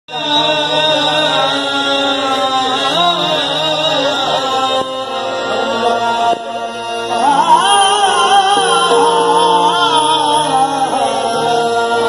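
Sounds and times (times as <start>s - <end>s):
harmonium held notes: 0.1s - 12.0s
man singing into a microphone: 0.1s - 12.0s.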